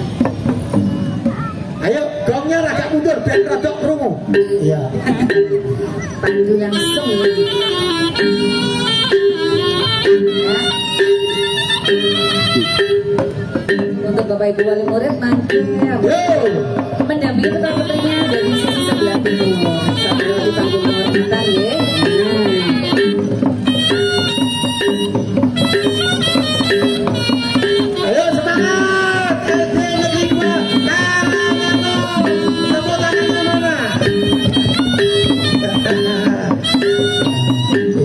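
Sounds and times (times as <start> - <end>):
reed pipe melody: 0.0 - 38.0
hand drum strokes: 14.9 - 38.0.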